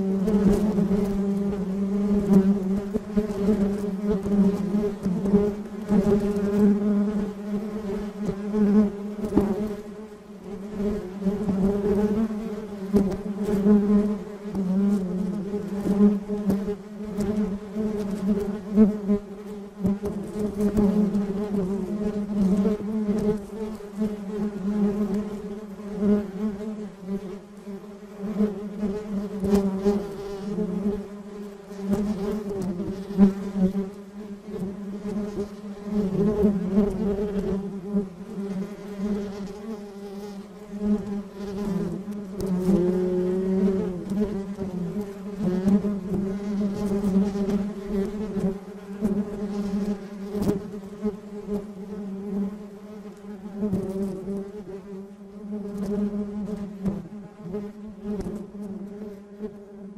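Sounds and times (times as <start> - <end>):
bees buzzing: 0.0 - 59.9.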